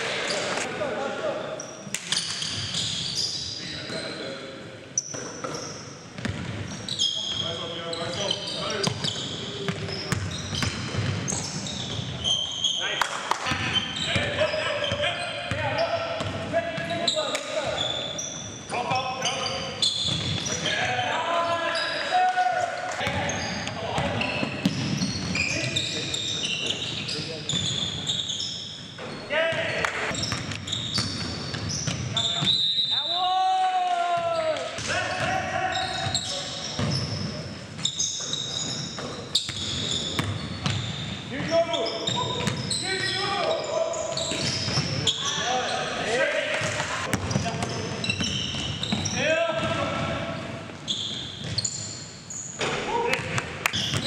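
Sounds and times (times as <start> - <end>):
sneakers squeaking: 0.0 - 0.7, 1.4 - 33.3, 34.0 - 54.0
basketball bouncing on hardwood: 6.2 - 6.6.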